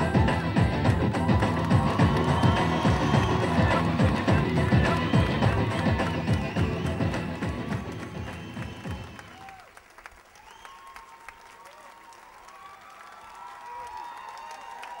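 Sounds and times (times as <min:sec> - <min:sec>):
voices calling out: 0:00.0 - 0:09.0
music with heavy beat: 0:00.0 - 0:09.2
audience applauding: 0:00.0 - 0:15.0.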